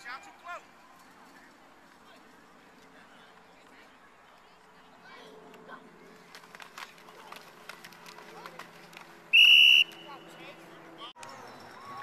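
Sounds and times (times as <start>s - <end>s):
referee's whistle blast: 9.4s - 10.0s.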